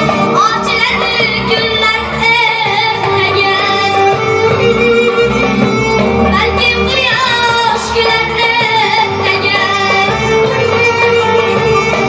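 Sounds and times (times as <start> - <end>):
live band playing: 0.0 - 12.0
boy singing into microphone: 0.4 - 4.2, 6.3 - 12.0.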